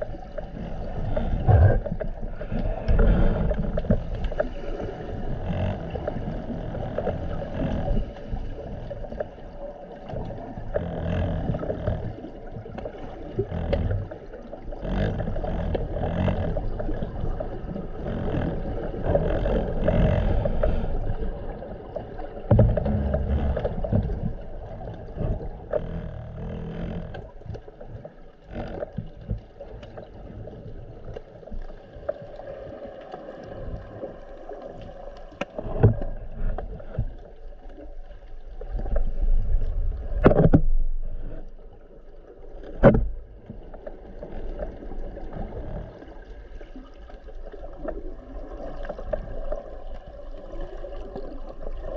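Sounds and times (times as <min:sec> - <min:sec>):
underwater rushing water: 0:00.0 - 0:51.9.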